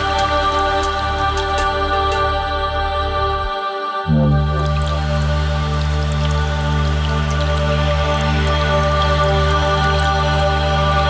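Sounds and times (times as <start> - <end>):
lo-fi ambient synth music: 0.0 - 11.0
deep bass: 4.1 - 9.3.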